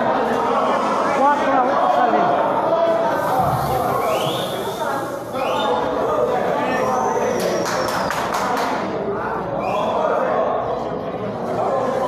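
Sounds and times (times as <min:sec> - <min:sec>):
sharp claps: 0:07.3 - 0:08.9.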